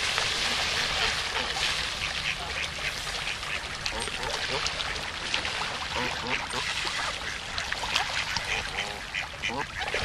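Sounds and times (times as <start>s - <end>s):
ducks quacking: 0.4s - 5.0s, 5.9s - 10.0s.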